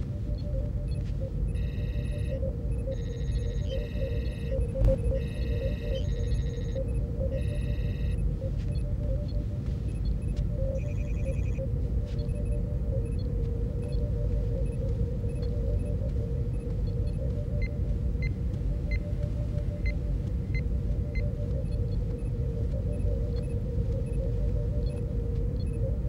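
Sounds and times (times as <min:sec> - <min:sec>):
low rumble and hum: 0:00.0 - 0:26.0
electronic computer bleeps: 0:00.3 - 0:09.3, 0:09.9 - 0:25.0.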